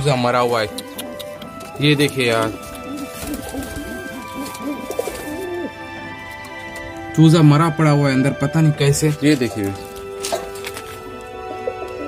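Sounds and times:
background music with held notes: 0.0 - 12.0
pigeon cooing: 0.7 - 6.9, 9.4 - 12.0.

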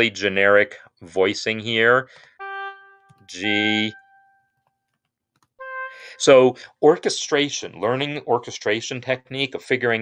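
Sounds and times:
sampled oboe notes: 2.2 - 4.9, 5.6 - 6.6.

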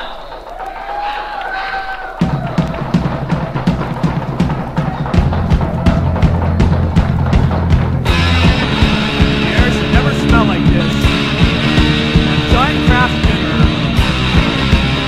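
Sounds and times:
punk band playing: 2.2 - 15.0.

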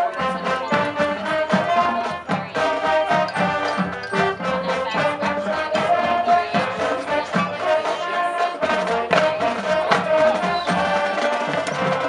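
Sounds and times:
brass chords: 0.0 - 12.0
steady drum beats: 0.0 - 12.0.

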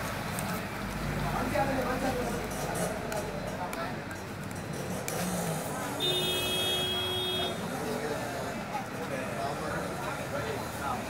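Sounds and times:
background noise: 0.0 - 11.0
vehicle horn: 6.0 - 7.6.

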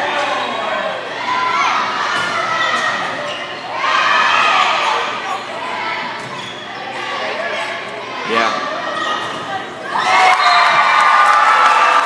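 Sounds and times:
crowd shouting and cheering: 0.0 - 12.0
spectators' voices: 0.0 - 12.0.

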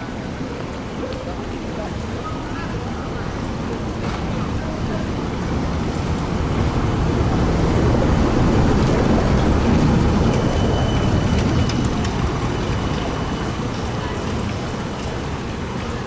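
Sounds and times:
trolleybus tyres on cobblestones: 0.0 - 16.0.

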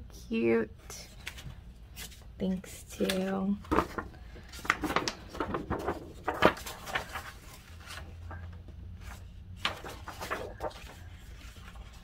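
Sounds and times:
paper rustling: 1.1 - 2.3, 2.9 - 12.0
paper swishes: 9.0 - 12.0.

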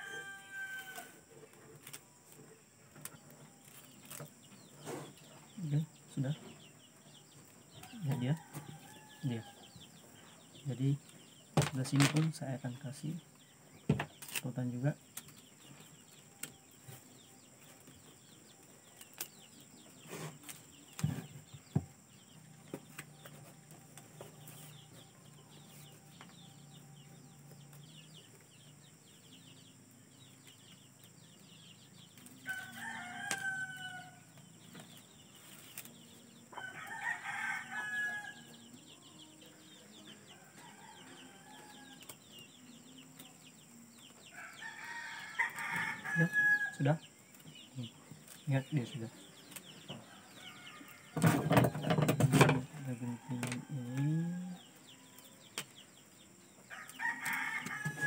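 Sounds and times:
rooster crowing: 0.0 - 1.3, 7.9 - 9.8, 32.4 - 34.3, 36.5 - 38.7, 44.3 - 46.8, 56.7 - 58.0.

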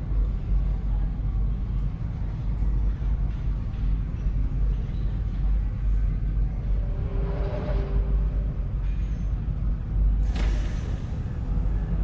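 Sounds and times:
deep machinery rumble: 0.0 - 12.0
soft hissing swell: 6.7 - 8.8.

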